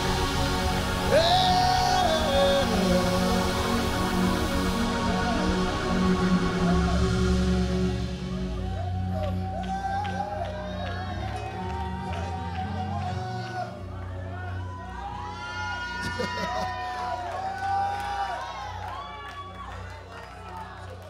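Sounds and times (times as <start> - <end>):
congregation shouting and cheering: 0.0 - 21.0
worship music: 0.0 - 21.0.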